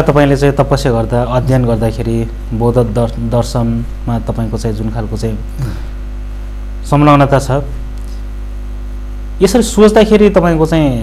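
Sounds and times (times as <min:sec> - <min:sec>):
man speaking: 0:00.0 - 0:05.8, 0:06.8 - 0:07.8, 0:09.4 - 0:11.0
electrical mains hum: 0:00.0 - 0:11.0.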